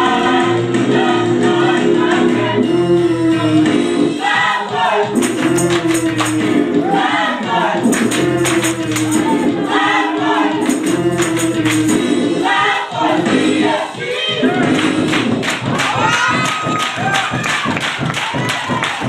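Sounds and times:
gospel choir singing: 0:00.0 - 0:15.4
instrumental backing: 0:00.0 - 0:15.8
steady percussive beat: 0:04.4 - 0:19.0.

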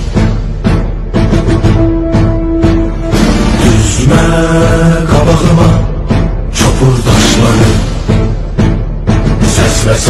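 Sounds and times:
low drums: 0:00.0 - 0:10.0.

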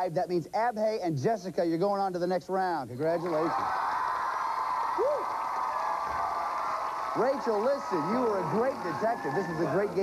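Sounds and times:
audience applauding and cheering: 0:03.0 - 0:10.0
person shouting woo: 0:05.0 - 0:05.3.

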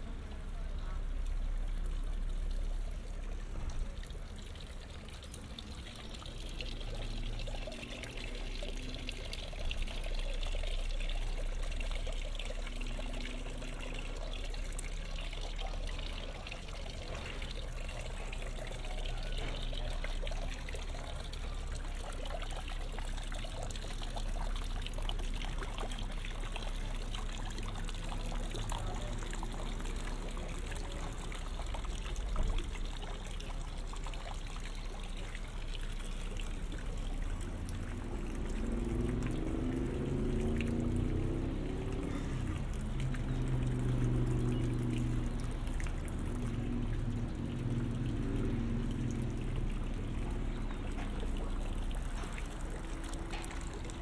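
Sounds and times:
fountain water splashing into basin: 0:00.0 - 0:54.0.

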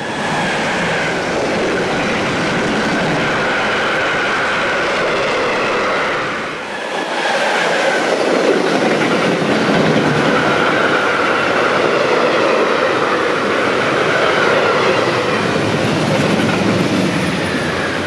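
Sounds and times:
freight train passing: 0:00.0 - 0:18.0
train wheels on rails: 0:00.0 - 0:18.0.

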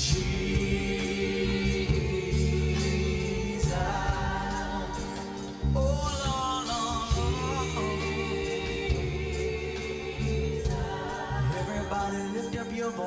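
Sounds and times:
keyboard accompaniment: 0:00.0 - 0:13.0
voices singing: 0:00.0 - 0:13.0.

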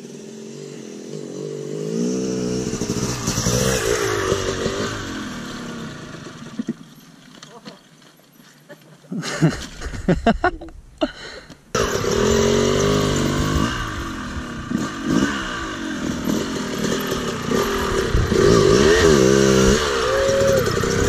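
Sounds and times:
dirt bike engine revving: 0:00.0 - 0:06.8, 0:11.7 - 0:21.0.

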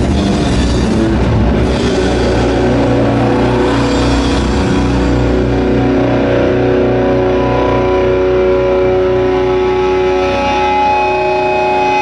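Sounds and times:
bass guitar: 0:00.0 - 0:12.0
distorted electric guitars: 0:00.0 - 0:12.0.

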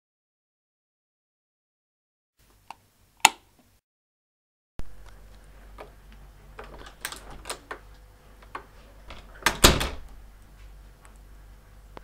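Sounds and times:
faint steady hum: 0:04.8 - 0:12.0.

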